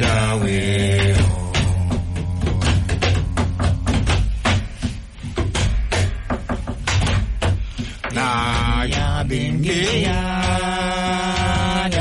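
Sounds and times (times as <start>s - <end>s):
person chanting: 0.0s - 4.1s
hand drum sharp strokes: 0.0s - 12.0s.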